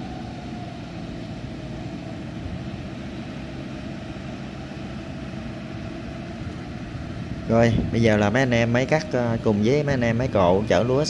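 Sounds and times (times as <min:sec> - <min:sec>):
diesel harvester engines droning: 0:00.0 - 0:11.0
high engine whine: 0:00.0 - 0:11.0.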